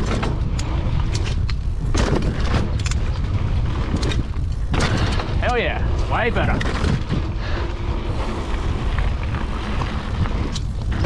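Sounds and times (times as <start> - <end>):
bike rattling over ground: 0.0 - 11.0
wind buffeting microphone: 0.0 - 11.0.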